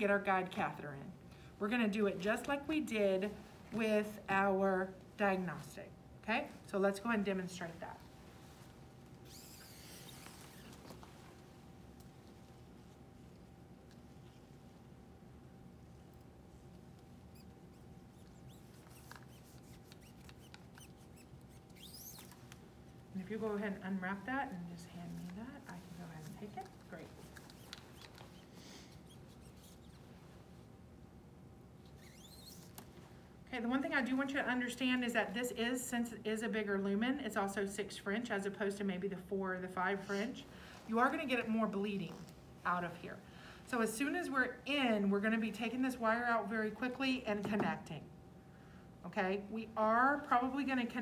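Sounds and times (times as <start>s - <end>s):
faint rustling of equipment: 2.1s - 30.8s, 31.7s - 35.5s, 39.9s - 43.0s
faint squeak: 9.2s - 11.0s, 17.2s - 22.4s, 31.8s - 32.8s.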